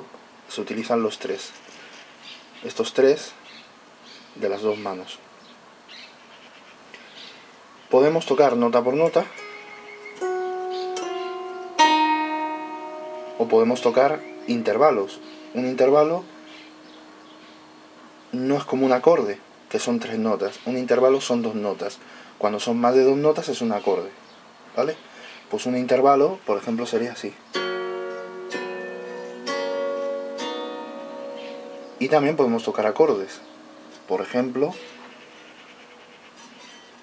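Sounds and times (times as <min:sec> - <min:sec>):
plucked zither notes: 0:09.4 - 0:20.2, 0:27.5 - 0:35.6.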